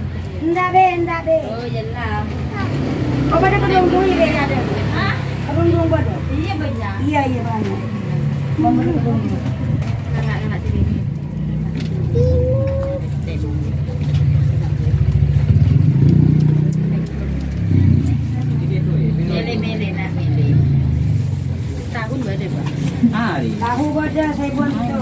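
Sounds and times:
traffic engine rumble: 0:00.0 - 0:25.0.

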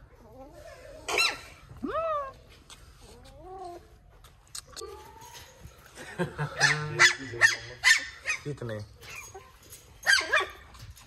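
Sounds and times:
puppy whining and yipping: 0:00.2 - 0:02.4, 0:09.0 - 0:10.9.

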